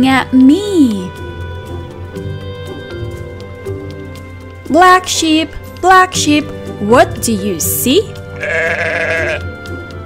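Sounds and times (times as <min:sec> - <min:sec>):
soft background music: 0:00.0 - 0:10.0
sheep bleating: 0:08.3 - 0:09.6.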